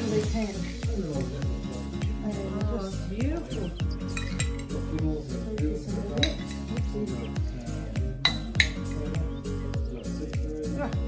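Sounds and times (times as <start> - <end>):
background music with bass beat: 0.0 - 11.0
metal spoon clinking ceramic bowl: 4.1 - 4.8, 6.2 - 6.8, 8.2 - 8.9.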